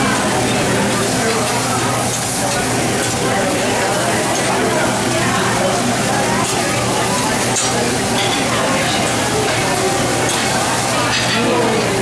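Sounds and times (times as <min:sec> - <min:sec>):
meat sizzling on a griddle: 0:00.0 - 0:12.0.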